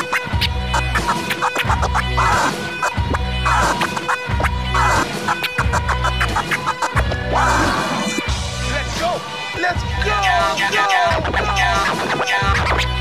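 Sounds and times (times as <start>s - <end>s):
record scratching on turntable: 0.0s - 8.3s, 10.0s - 13.0s
hip-hop beat with heavy bass: 0.0s - 13.0s.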